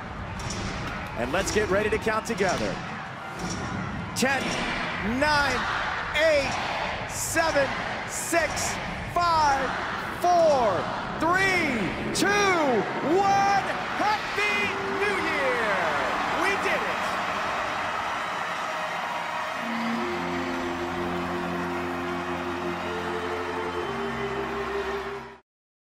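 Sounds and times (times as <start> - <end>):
crowd shouting countdown: 1.1 - 25.4
crowd cheering and whooping: 12.2 - 25.4
music with long held chords: 18.9 - 25.4.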